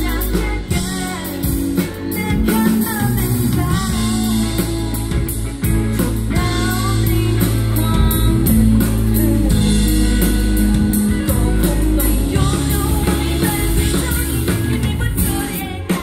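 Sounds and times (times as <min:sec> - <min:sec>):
drum kit beat: 0:00.0 - 0:16.0
electric bass guitar: 0:00.0 - 0:16.0
keyboard: 0:00.0 - 0:16.0
woman singing: 0:00.0 - 0:16.0.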